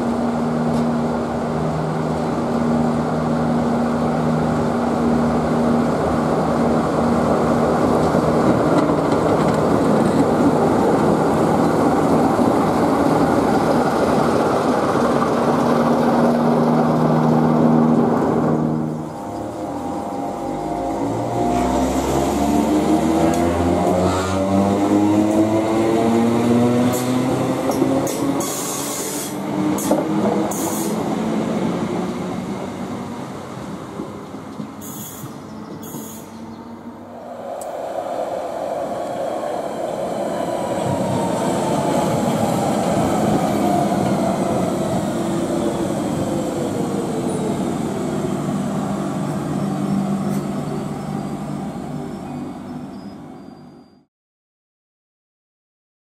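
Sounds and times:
electric train passing: 0.0 - 53.6
rail noise: 0.0 - 54.0.

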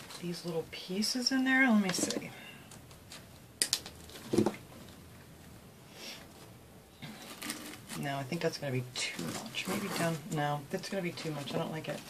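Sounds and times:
artificial pine sprigs rustling: 6.0 - 12.0.

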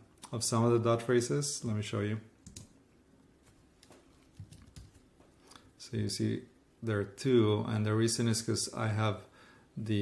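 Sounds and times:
faint keyboard typing: 2.4 - 2.8, 3.4 - 5.6.

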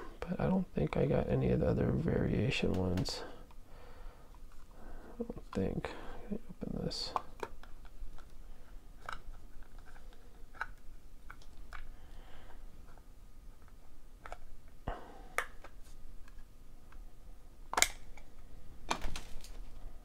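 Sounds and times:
plastic case snapping open: 17.7 - 18.3, 18.9 - 19.6.

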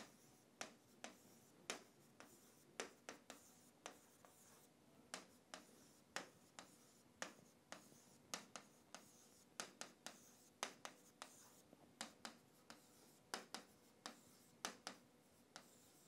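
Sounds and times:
stylus tapping on drawing tablet: 0.0 - 16.0.

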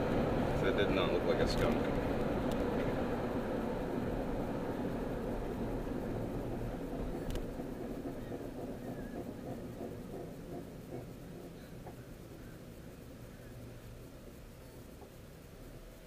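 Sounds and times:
car cabin road and engine noise: 0.0 - 16.0.

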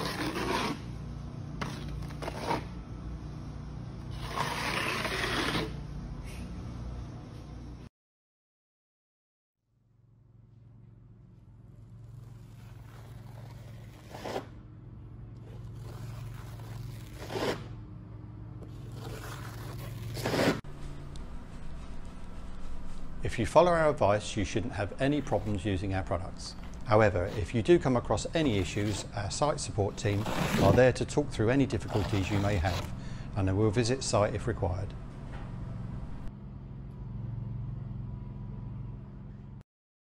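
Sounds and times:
blade scraping filler on wall: 0.0 - 0.9, 1.6 - 2.7, 4.1 - 5.8, 12.1 - 14.5, 15.7 - 17.7, 18.8 - 20.6, 30.0 - 31.0, 31.7 - 33.0
low hum: 9.7 - 30.2, 34.8 - 39.6.

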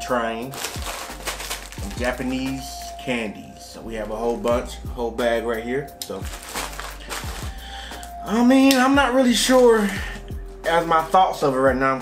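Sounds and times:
plastic bag crinkling: 0.4 - 3.1, 6.0 - 8.2.

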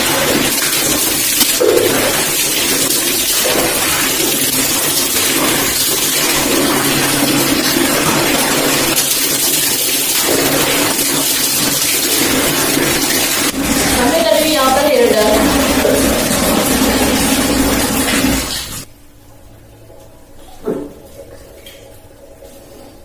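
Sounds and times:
tap water splashing into tub: 0.0 - 18.9, 20.4 - 22.6.

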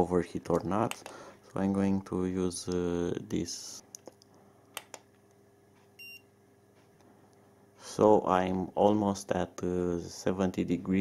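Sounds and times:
thermometer short high beep: 6.0 - 6.2.

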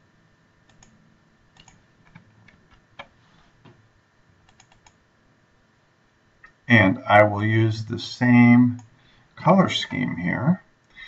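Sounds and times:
keyboard and mouse clicks: 0.7 - 3.8, 4.4 - 5.0.

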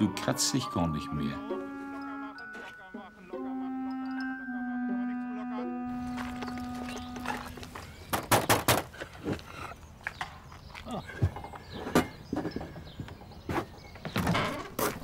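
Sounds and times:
musical bridge of held notes: 0.0 - 7.7.

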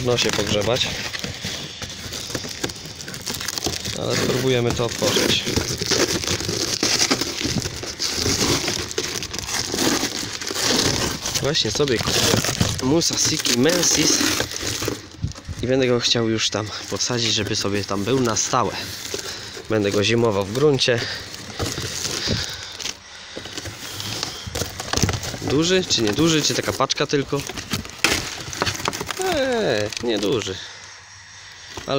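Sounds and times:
packing tape ripping: 0.0 - 15.5, 16.7 - 30.6
cardboard box being torn open: 0.0 - 15.7, 16.6 - 30.6
rustling and crackling: 0.0 - 31.0.

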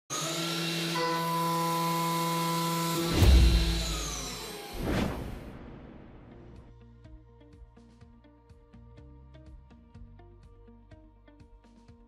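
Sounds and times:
deep booming hit: 3.1 - 4.2, 4.8 - 6.7
swoosh: 3.1 - 6.7.

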